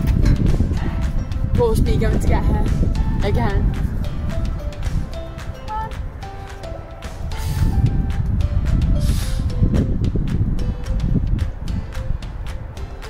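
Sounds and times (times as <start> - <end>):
plucked melody with ticking beat: 0.0 - 13.0
wind buffeting microphone: 0.0 - 13.0.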